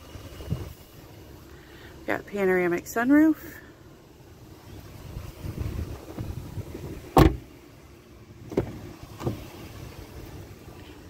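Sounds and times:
sharp thunk: 7.2s - 7.4s.

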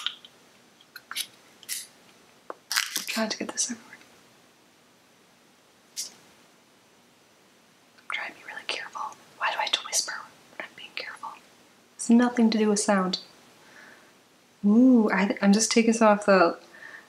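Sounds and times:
woman whispering: 3.2s - 4.0s, 8.1s - 11.4s.

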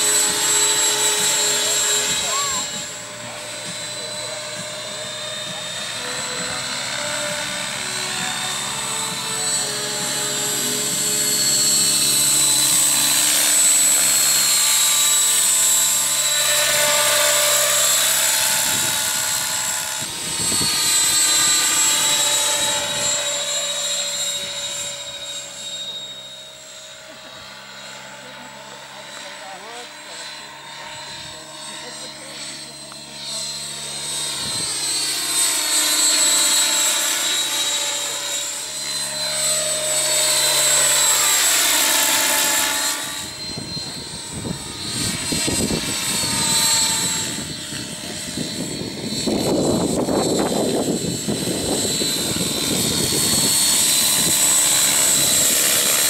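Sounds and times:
model helicopter flying past: 0.0s - 56.0s.

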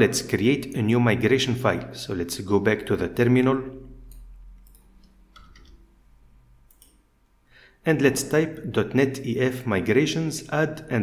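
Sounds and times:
man talking: 0.0s - 3.9s, 7.8s - 11.0s.

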